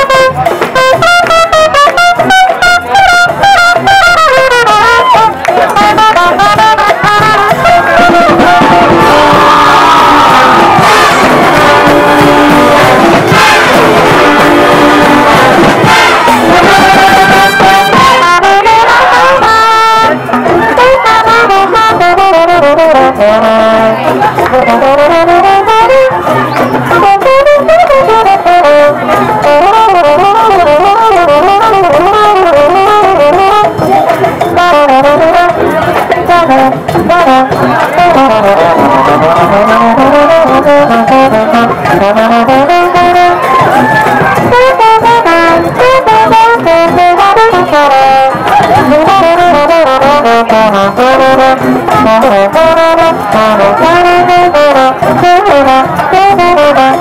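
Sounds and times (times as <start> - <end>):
brass band playing latin music: 0.0 - 57.0
trombone solo with slides: 0.0 - 57.0.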